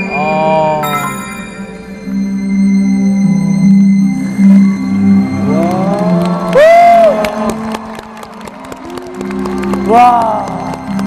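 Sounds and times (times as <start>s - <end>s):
music: 0.0s - 11.0s
crowd cheering and clapping: 5.4s - 11.0s.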